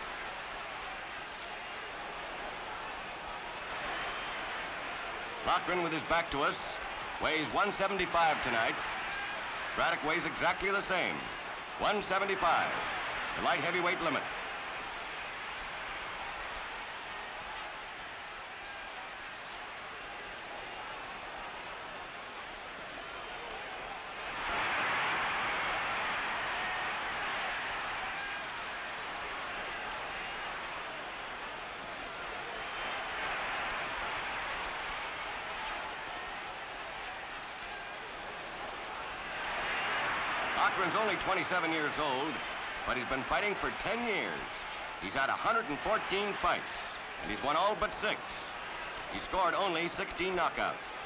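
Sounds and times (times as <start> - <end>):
crowd din of many voices: 0.0 - 51.0.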